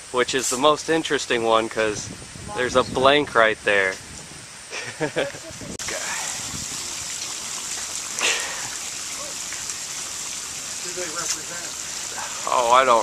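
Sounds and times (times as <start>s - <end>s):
rushing hiss of splashing water: 0.0s - 13.0s.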